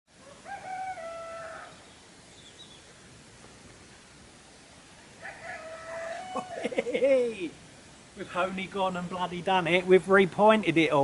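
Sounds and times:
rooster crowing: 0.2 - 1.9, 5.2 - 6.8.

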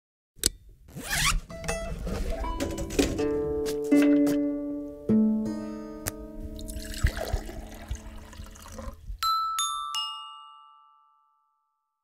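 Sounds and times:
plucked string chord: 1.5 - 6.8.

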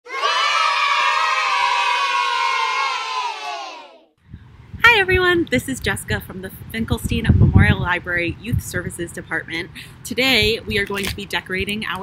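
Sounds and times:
children cheering: 0.0 - 4.1.

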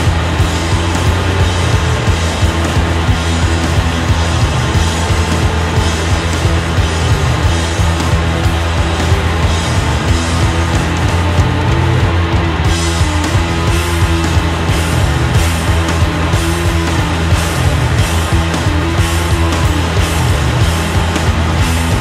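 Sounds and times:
drum kit playing: 0.0 - 22.0
electric bass guitar: 0.0 - 22.0.

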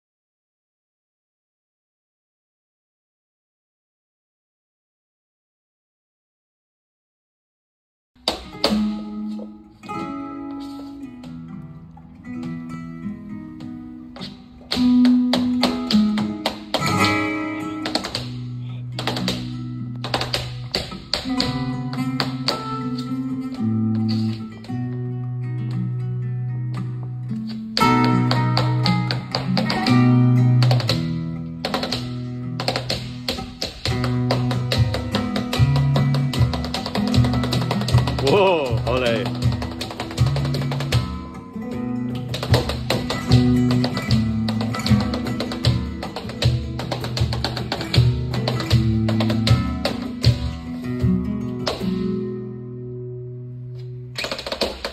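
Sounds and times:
flamenco guitar: 8.2 - 54.9
sharp percussive taps: 19.0 - 22.8, 30.6 - 41.2, 42.2 - 52.0, 54.2 - 54.9.

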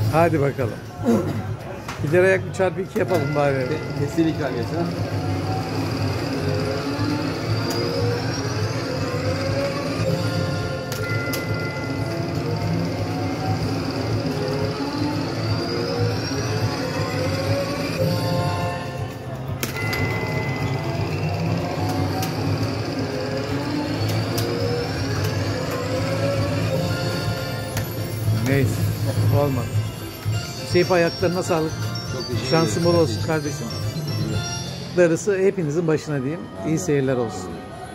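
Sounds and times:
looping slot machine music: 0.0 - 37.9
sharp chime and bright tone: 25.9 - 35.9.

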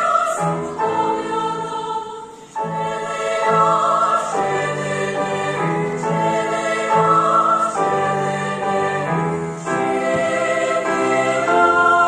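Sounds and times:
choir singing sustained chords: 0.0 - 12.0
grand piano accompaniment: 0.0 - 12.0.

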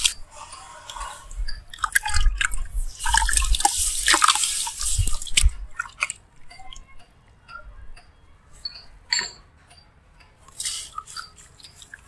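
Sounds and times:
water drips: 0.9 - 7.1, 10.5 - 12.0
water sloshing: 1.6 - 6.5.

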